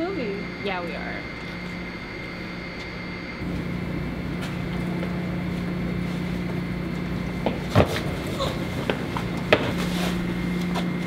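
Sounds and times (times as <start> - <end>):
ventilation machinery hum: 0.0 - 11.0.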